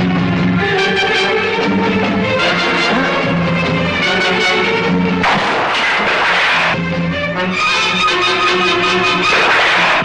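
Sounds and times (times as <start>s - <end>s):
film background score: 0.0s - 10.0s
sudden burst of noise: 5.2s - 6.8s.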